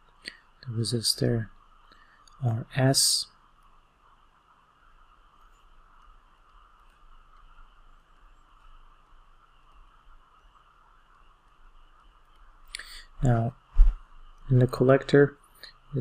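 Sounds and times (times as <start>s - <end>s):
faint high hum: 0.0s - 16.0s.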